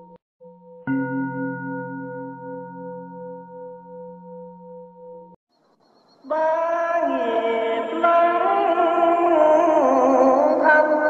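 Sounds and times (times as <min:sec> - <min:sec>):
bowl bell ringing: 0:00.4 - 0:05.4.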